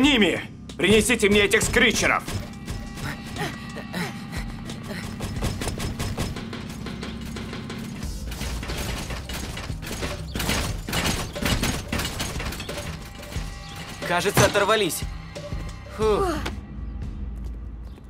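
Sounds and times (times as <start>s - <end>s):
robot mechanical clanking steps: 0.6s - 3.9s, 4.5s - 15.8s.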